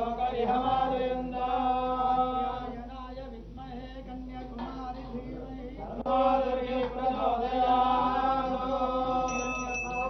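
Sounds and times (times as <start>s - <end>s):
men chanting: 0.0s - 9.7s
hand bell ringing: 9.3s - 10.0s.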